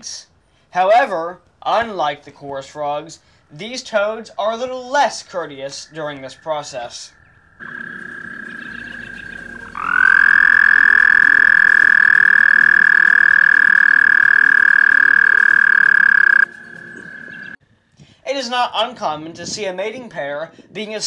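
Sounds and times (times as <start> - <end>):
toad trilling: 5.3 - 17.6
faint toad trill: 5.7 - 17.6.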